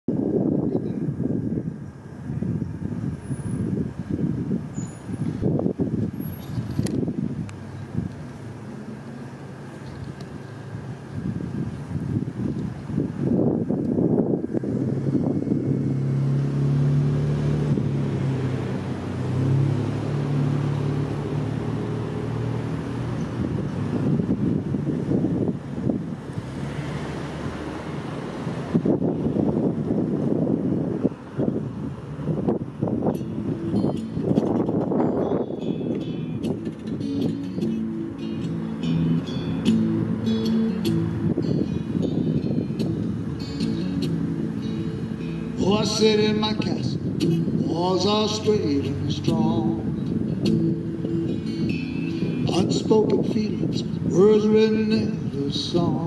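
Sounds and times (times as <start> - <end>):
cars passing: 0.1 - 56.0
truck engine humming: 0.1 - 56.0.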